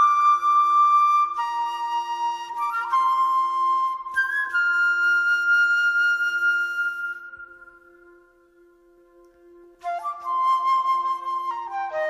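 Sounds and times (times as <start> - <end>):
flute note: 9.8 - 12.0.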